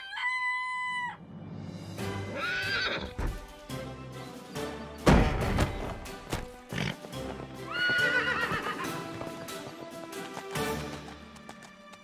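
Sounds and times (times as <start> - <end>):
background music: 0.0 - 12.0
horse whinny: 2.3 - 3.2, 7.7 - 9.0
hoof clops: 5.5 - 12.0.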